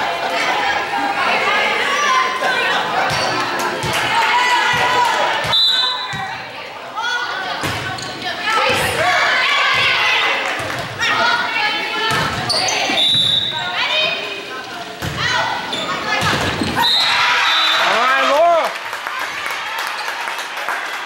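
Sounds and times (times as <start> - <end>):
players and spectators shouting: 0.0 - 7.6, 8.2 - 14.2, 15.2 - 18.7.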